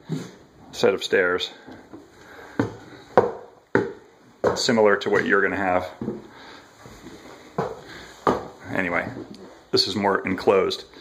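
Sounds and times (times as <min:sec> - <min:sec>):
footsteps on wooden stairs: 0:01.7 - 0:09.5.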